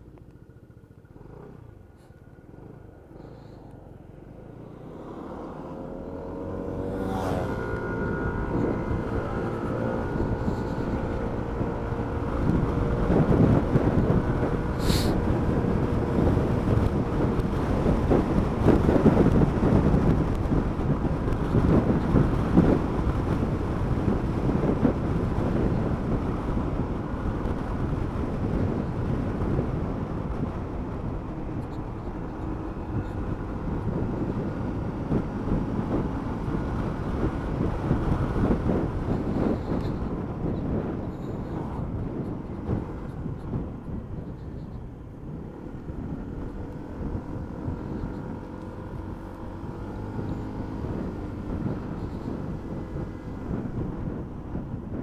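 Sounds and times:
motorcycle engine: 0.0 - 55.0
road noise: 0.0 - 55.0
wind rushing over microphone: 2.4 - 55.0.

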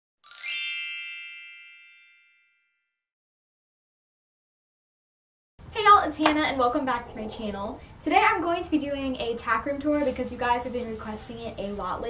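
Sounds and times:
bright chime: 0.2 - 2.7.

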